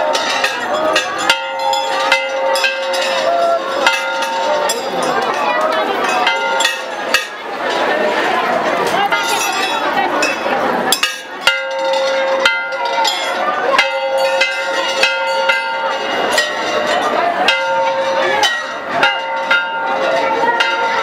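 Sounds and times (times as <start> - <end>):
crowd chatter: 0.0 - 21.0
large brass bells ringing: 0.0 - 21.0.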